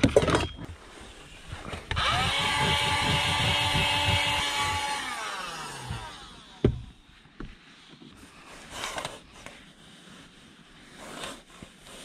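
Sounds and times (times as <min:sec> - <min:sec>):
handheld vacuum motor whine: 0:01.5 - 0:07.0.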